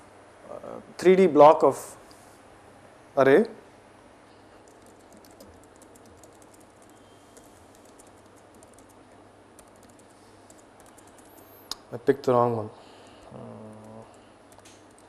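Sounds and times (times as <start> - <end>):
faint keyboard keystrokes: 4.6 - 9.0, 9.6 - 11.6, 13.0 - 15.0.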